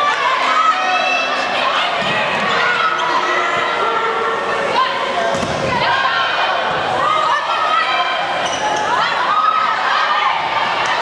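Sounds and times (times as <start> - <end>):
people calling out in gym: 0.0 - 11.0.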